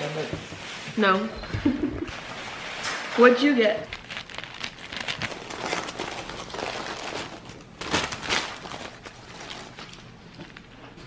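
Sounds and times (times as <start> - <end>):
paper wrapper crinkling: 2.1 - 11.0.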